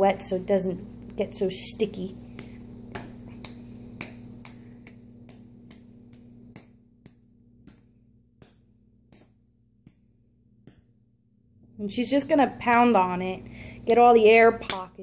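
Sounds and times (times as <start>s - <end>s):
hands slapping wet clay: 2.2s - 10.1s, 14.6s - 15.0s.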